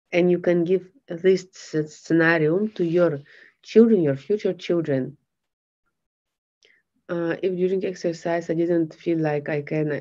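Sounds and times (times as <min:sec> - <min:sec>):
woman speaking: 0:00.1 - 0:05.2, 0:07.1 - 0:10.0.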